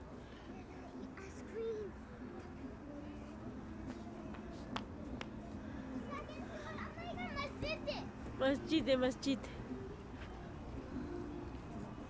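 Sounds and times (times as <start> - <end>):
children calling and chattering: 5.4 - 8.9.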